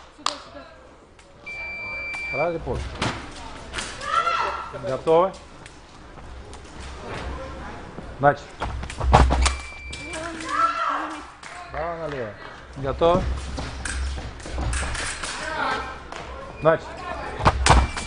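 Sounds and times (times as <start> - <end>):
scoring machine beeping: 1.5 - 2.6, 9.5 - 10.2
stamping footwork thuds: 8.6 - 9.7, 17.4 - 18.0.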